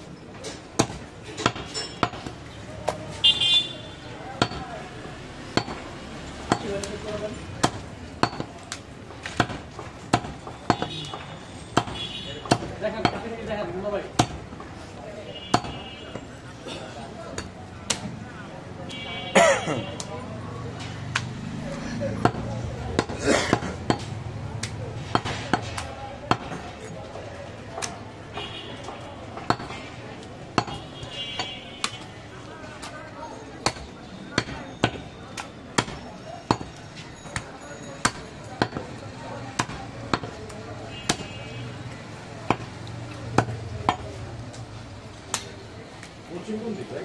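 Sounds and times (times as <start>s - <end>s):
knife chopping on wooden block: 9.3s - 13.3s.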